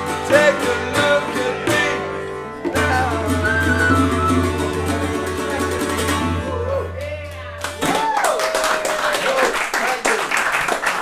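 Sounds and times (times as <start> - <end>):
folk tune on whistle strings and tabla: 3.3 - 5.0
audience clapping: 7.0 - 11.0
audience cheering: 7.7 - 11.0.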